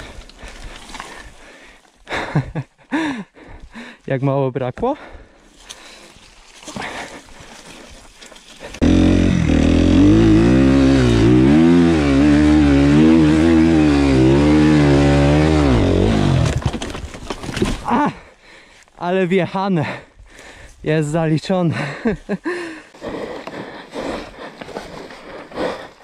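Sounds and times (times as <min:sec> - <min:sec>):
motocross bike engine revving: 0:08.8 - 0:16.7.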